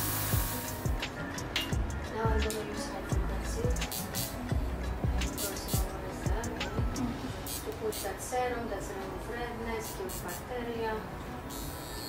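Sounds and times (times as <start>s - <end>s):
high-pitched electrical buzz: 0.0s - 1.1s, 3.6s - 4.5s, 11.4s - 12.0s.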